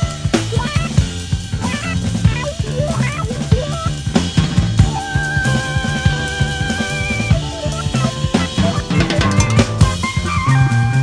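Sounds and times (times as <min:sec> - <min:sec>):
bass line: 0:00.0 - 0:11.0
drum kit: 0:00.0 - 0:11.0
jazz-rock band playing: 0:00.0 - 0:11.0.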